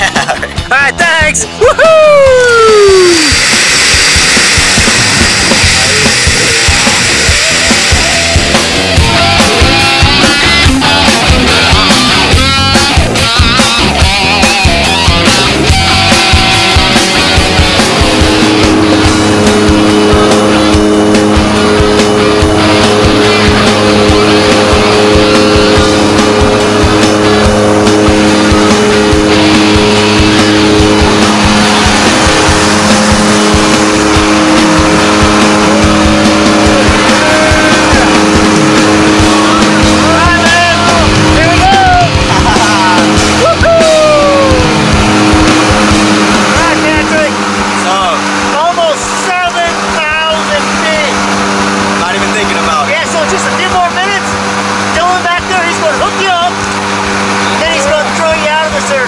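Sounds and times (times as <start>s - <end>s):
aircraft engines droning: 1.2s - 59.0s
rising and falling sounds: 1.6s - 48.5s.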